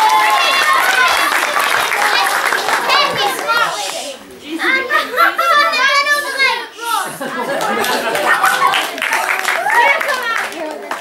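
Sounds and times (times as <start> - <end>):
hand-clapping: 0.0 - 4.0, 7.6 - 11.0
children cheering and chattering: 0.0 - 11.0.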